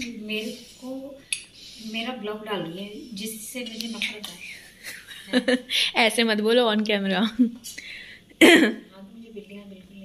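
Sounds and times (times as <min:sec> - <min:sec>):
person clearing throat: 0:08.4 - 0:08.8.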